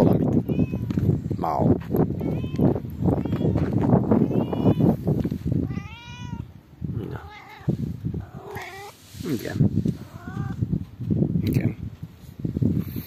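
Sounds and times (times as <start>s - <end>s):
cat meowing: 0.3s - 1.0s, 2.2s - 5.0s, 5.6s - 9.0s, 10.0s - 10.7s.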